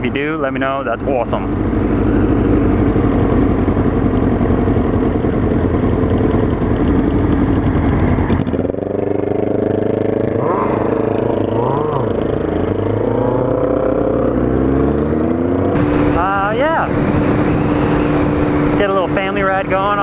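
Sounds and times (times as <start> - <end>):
motorcycle engine: 0.0 - 20.0
wind rush on microphone: 15.7 - 20.0.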